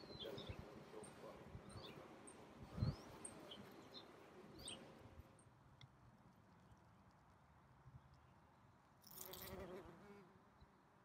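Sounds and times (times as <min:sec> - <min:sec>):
faint garden ambience: 0:00.0 - 0:11.0
insect buzzing: 0:09.1 - 0:10.2.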